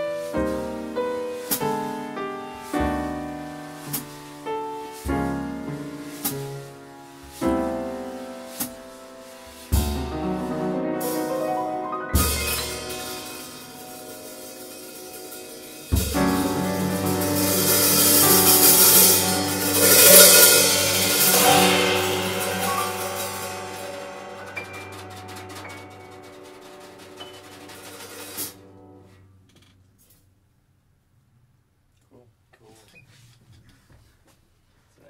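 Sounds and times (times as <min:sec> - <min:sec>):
low piano chord: 0:00.0 - 0:29.1
cymbal wash: 0:09.7 - 0:28.7.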